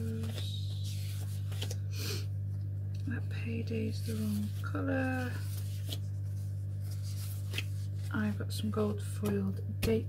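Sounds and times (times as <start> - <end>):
paper sheets rustling: 0.0 - 1.8, 4.0 - 8.4
steady low hum: 0.0 - 10.0.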